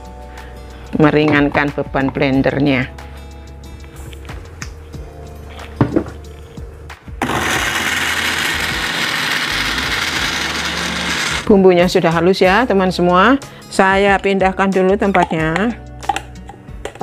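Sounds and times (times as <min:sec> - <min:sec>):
knock: 0:05.8 - 0:06.2
electric blender running: 0:07.2 - 0:11.5.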